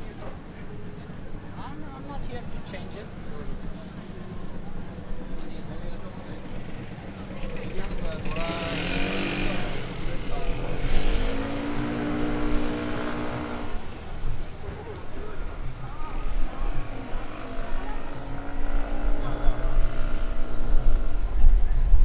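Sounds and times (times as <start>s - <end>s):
scooter engine passing: 0.0s - 21.4s
city traffic hum: 0.0s - 22.0s.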